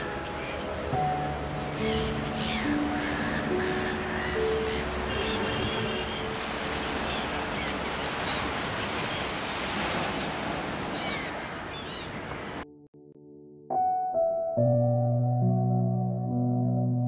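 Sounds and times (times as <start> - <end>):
soft sustained music notes: 0.0 - 8.2, 12.7 - 17.0
surf washing on a beach: 4.8 - 12.6.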